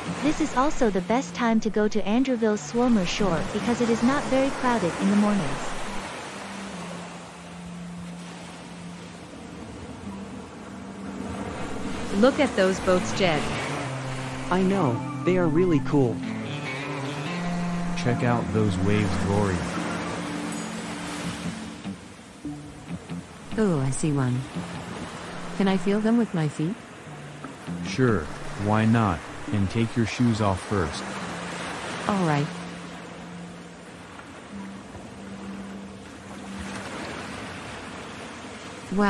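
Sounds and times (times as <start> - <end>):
ocean surf washing in: 0.0 - 1.5, 2.2 - 39.0
background music low sustained notes: 0.0 - 39.0
waves breaking on beach: 0.0 - 39.0.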